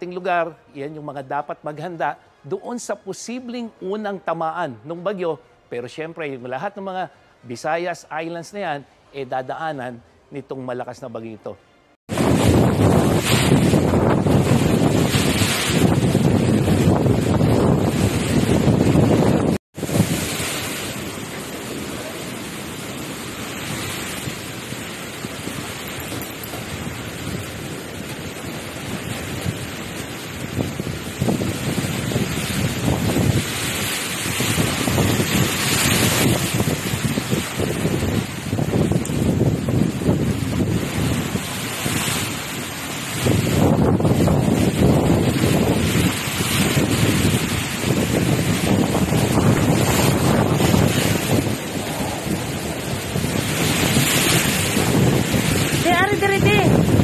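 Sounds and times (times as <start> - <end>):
strong gusting wind: 12.1 - 57.0
wind buffeting microphone: 12.1 - 57.0.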